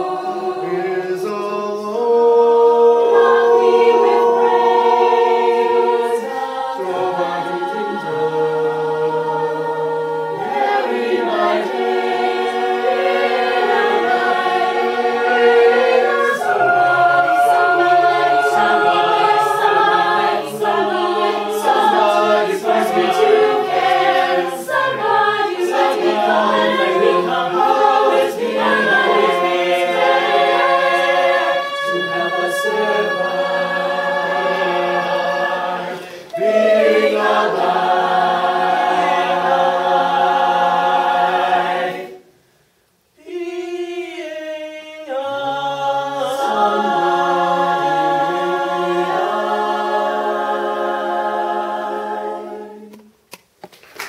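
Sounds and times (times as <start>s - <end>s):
a cappella group singing: 0.0s - 42.4s, 43.2s - 53.2s.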